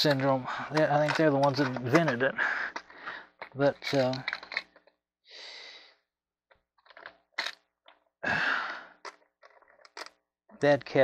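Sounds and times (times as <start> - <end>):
man exhaling breathily: 8.2 - 9.0.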